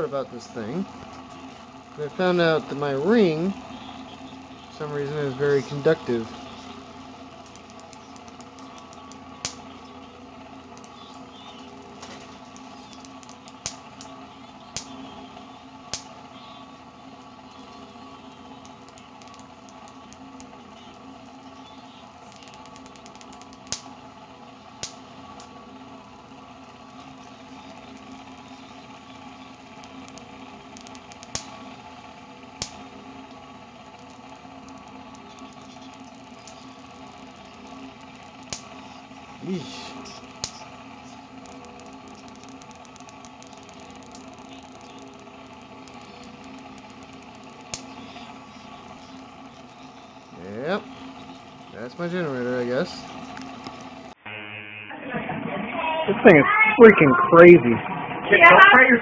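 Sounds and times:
fan motor humming: 0:00.0 - 0:59.0
sharp spark snaps: 0:05.0 - 0:16.5, 0:17.2 - 0:24.0, 0:24.8 - 0:25.6, 0:26.6 - 0:49.9.

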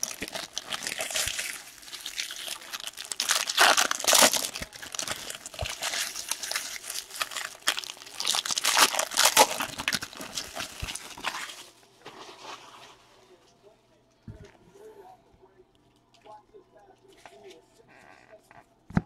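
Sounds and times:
foil wrappers crinkling and tearing: 0:00.0 - 0:13.0.

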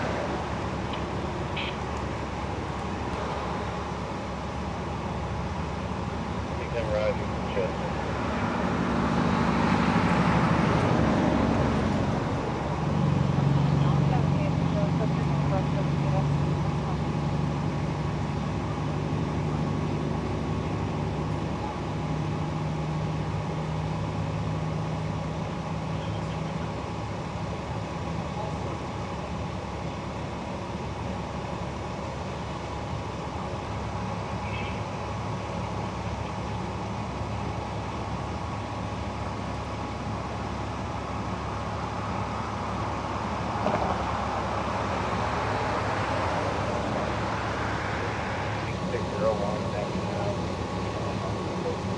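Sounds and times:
truck engine idling: 0:00.0 - 0:51.9.

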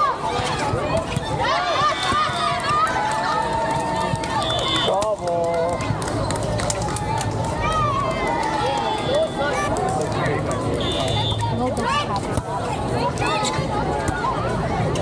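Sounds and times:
people calling out and chattering: 0:00.0 - 0:15.0.

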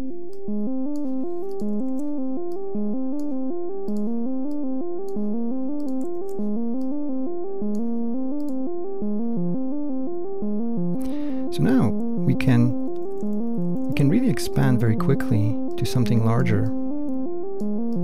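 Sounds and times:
plucky synthesizer sequence: 0:00.0 - 0:18.0.

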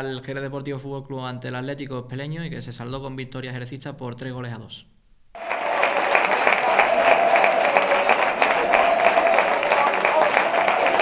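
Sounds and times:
loud steady applause: 0:05.4 - 0:11.0.

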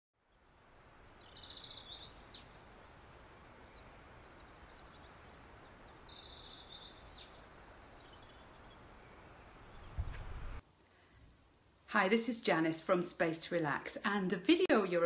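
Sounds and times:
songbird singing: 0:00.2 - 0:10.6
steady low hiss: 0:00.2 - 0:14.9.

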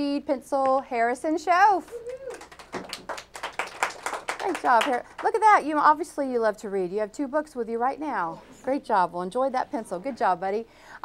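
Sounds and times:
people clapping: 0:01.8 - 0:05.5.

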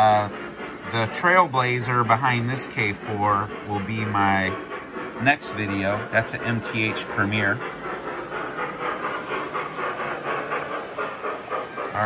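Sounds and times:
model steam locomotive chuffing: 0:00.0 - 0:12.0.

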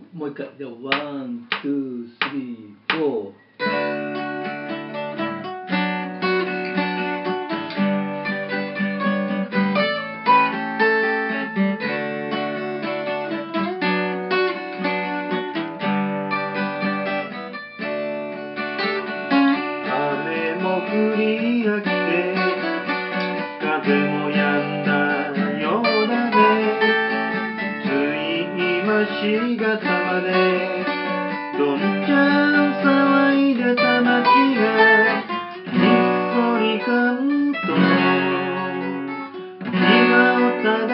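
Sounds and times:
acoustic guitar strumming: 0:00.9 - 0:40.9
person singing: 0:19.3 - 0:40.9.

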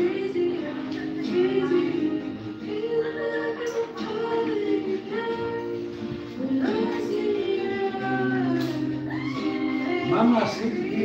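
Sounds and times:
backing music through speakers: 0:00.0 - 0:11.0
person singing into microphone: 0:00.0 - 0:11.0.

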